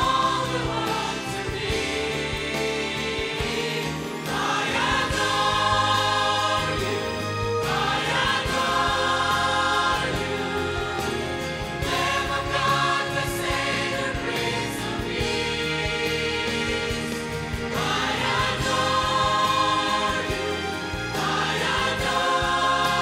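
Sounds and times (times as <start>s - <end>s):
mixed choir singing: 0.0s - 23.0s.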